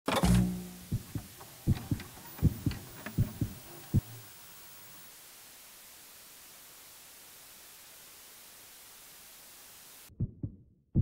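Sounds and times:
heartbeat-like low thumps: 0.9 - 4.2, 10.1 - 11.0.

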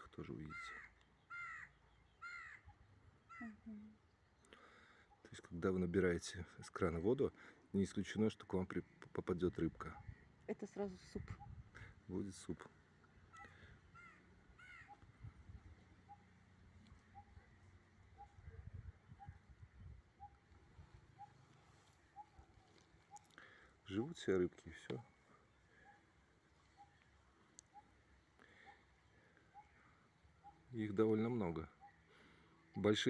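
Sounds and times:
faint bird calls: 0.0 - 5.4, 9.8 - 32.9
crow cawing: 0.4 - 2.7, 13.3 - 15.0.

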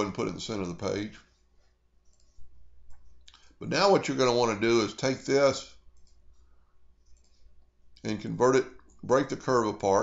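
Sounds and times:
computer mouse click: 2.0 - 3.5, 5.9 - 6.4, 7.0 - 7.4.

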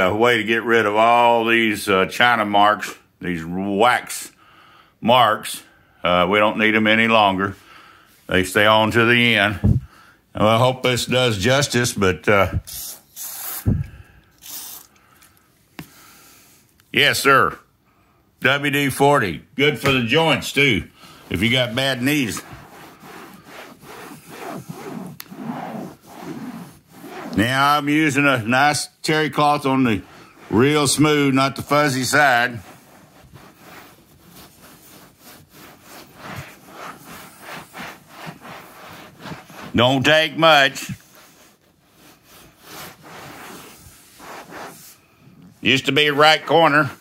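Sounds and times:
aerosol spray hissing: 12.7 - 13.7, 14.4 - 14.9
cloth rubbing seat cover: 21.0 - 28.1, 29.7 - 45.2.

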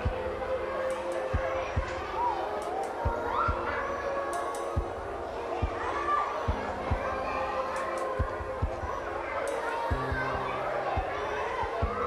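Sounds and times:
children playing: 0.0 - 12.0.

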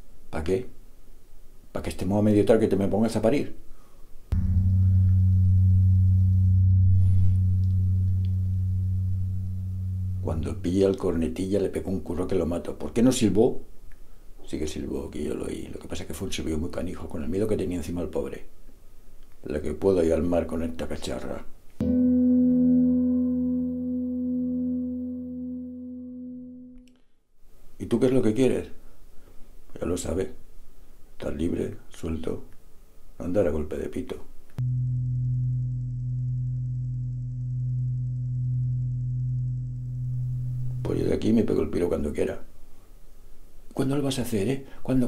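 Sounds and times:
deep gong-like tone: 4.4 - 10.8, 21.8 - 26.8, 34.6 - 41.3.

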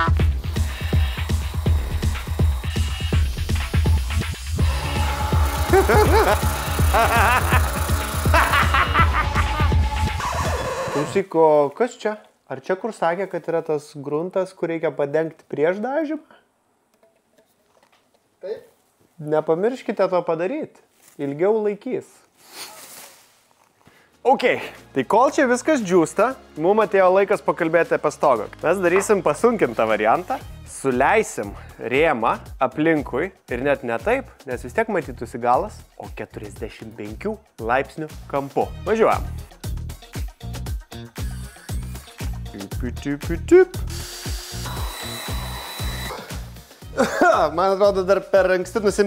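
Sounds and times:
background music with steady beat: 0.0 - 11.0, 24.1 - 49.0
paint sprayer hissing and whining: 0.3 - 11.0, 43.8 - 46.6
cordless drill running: 0.4 - 4.0, 4.6 - 11.2, 43.8 - 46.6
plastic sheet rustling: 22.3 - 23.8.

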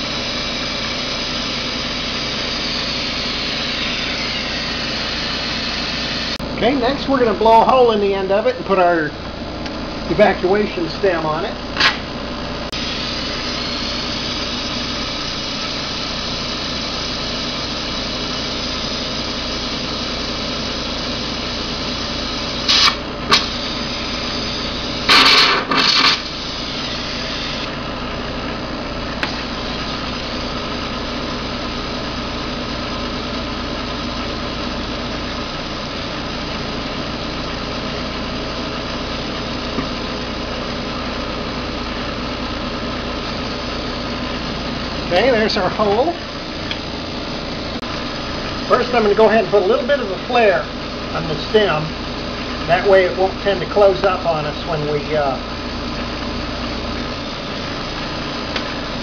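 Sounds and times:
torch flame hissing: 0.0 - 6.9, 9.6 - 28.2
glass lathe running: 0.0 - 59.0
loud bursts of noise: 22.7 - 27.8.

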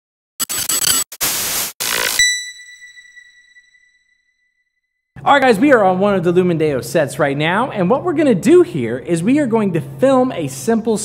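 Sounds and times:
high ringing tone: 1.9 - 4.9.

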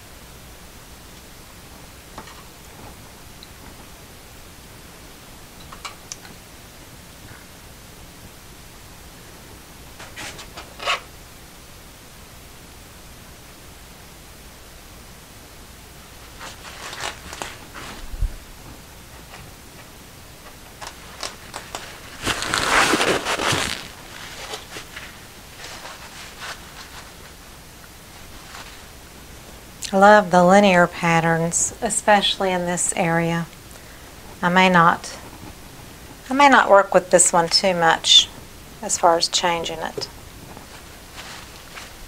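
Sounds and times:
low steady hiss: 0.0 - 42.0
rustling: 16.1 - 29.6, 39.9 - 42.0.

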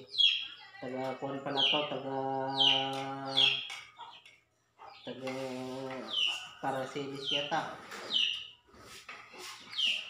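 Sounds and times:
high bird chirps: 0.0 - 5.4, 6.0 - 8.7, 9.4 - 10.0.

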